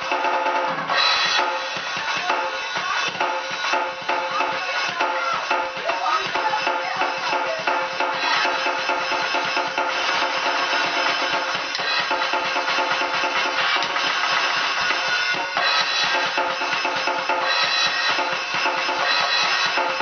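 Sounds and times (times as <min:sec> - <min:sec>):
electronic drum kit: 0:00.0 - 0:20.0.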